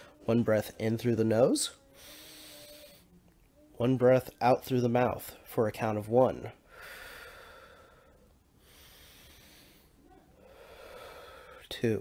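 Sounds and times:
deep breathing: 1.8s - 3.2s, 6.6s - 11.8s.

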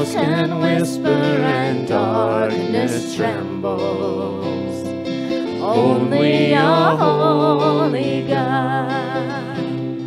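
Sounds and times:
people singing worship song: 0.0s - 9.6s
acoustic guitar: 0.0s - 10.0s.

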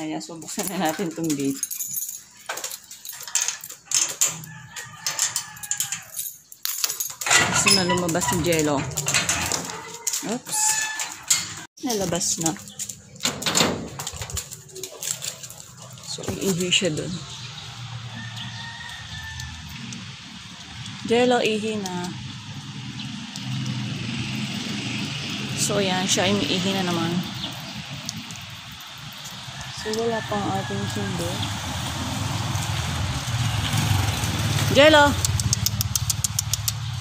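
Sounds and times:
metal gate unbolted and opening: 0.2s - 17.2s
vehicle engine running: 29.8s - 37.0s.

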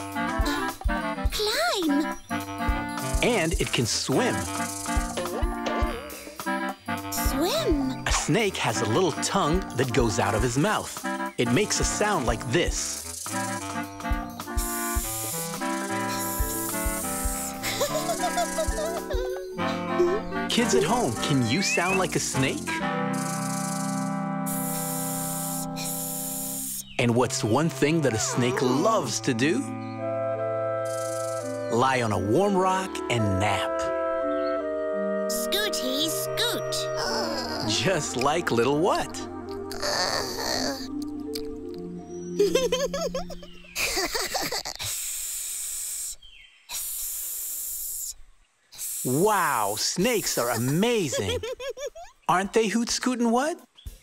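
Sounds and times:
long hisses: 4.2s - 5.2s, 12.7s - 19.4s, 23.0s - 27.0s, 30.8s - 31.7s, 43.7s - 51.3s
held music chord: 13.5s - 24.7s.

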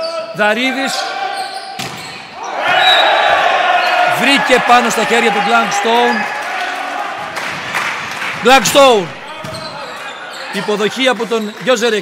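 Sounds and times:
crowd shouting and cheering: 0.0s - 12.0s
volleyball smack: 1.8s - 2.1s.

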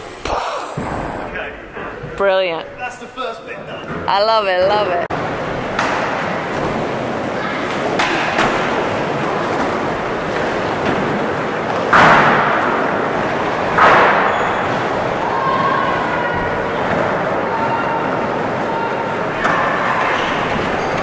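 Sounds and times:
skateboards rolling on wooden ramps: 4.6s - 21.0s
skateboards slamming and clacking: 5.1s - 21.0s.

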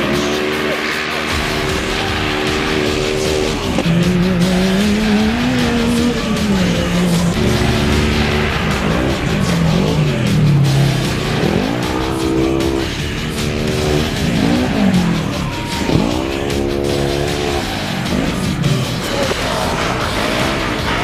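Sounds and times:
race engines at high revs: 0.0s - 21.0s
tyre and dirt rush: 0.0s - 21.0s.

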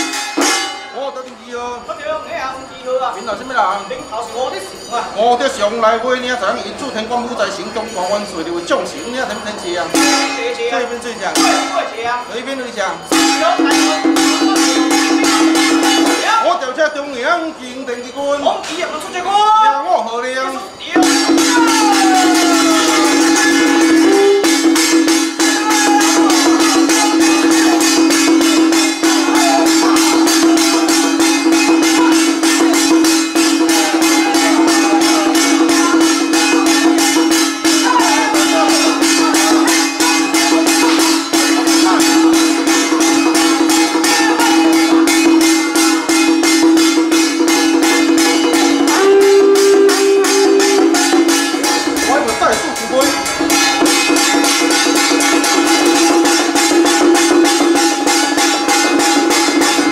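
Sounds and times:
jingling rattling percussion: 0.0s - 59.9s
person chanting: 21.4s - 45.6s, 47.8s - 51.0s.

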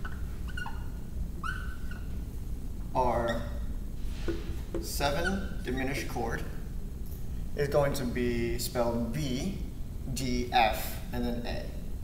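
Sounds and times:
marker squeaking on whiteboard: 0.0s - 2.3s, 3.0s - 6.1s
low room hum: 0.0s - 12.0s.

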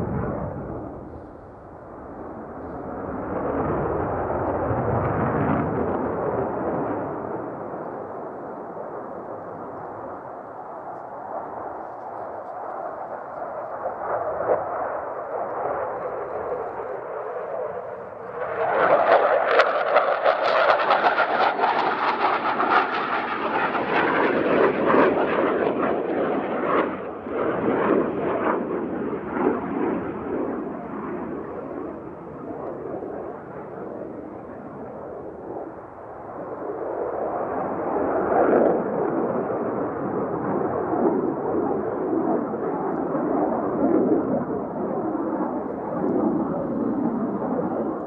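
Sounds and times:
jet engine roar: 0.0s - 48.0s.

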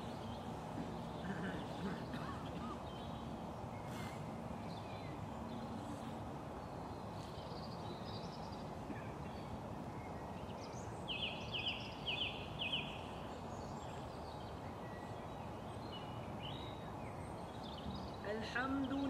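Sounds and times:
bird chirping: 0.0s - 19.0s
low background hiss: 0.0s - 19.0s.

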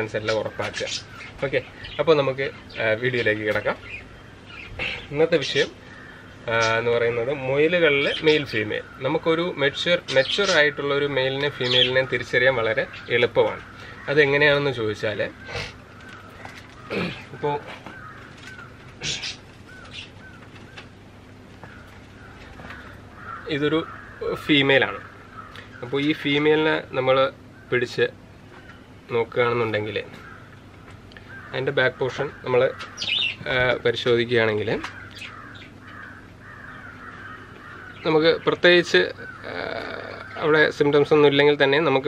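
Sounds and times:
birds chirping: 0.0s - 42.0s
harsh bird call: 0.0s - 42.0s
low steady hum: 0.0s - 42.0s.

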